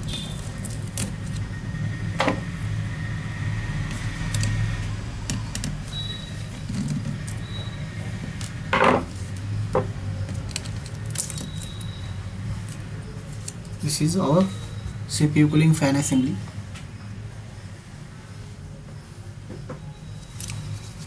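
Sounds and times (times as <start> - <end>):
small parts being handled: 10.2 - 11.9.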